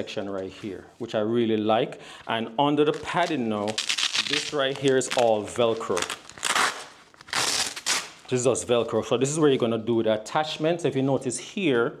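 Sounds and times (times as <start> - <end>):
velcro ripping apart: 2.9 - 8.3.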